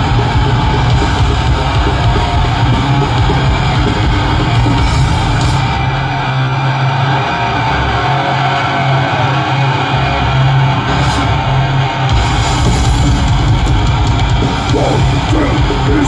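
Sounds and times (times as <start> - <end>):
metal band playing live: 0.0 - 16.0.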